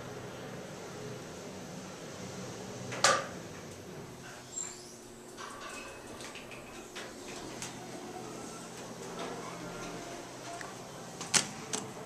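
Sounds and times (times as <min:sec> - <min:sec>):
elevator hum: 0:00.0 - 0:12.0
faint elevator tones: 0:02.9 - 0:12.0.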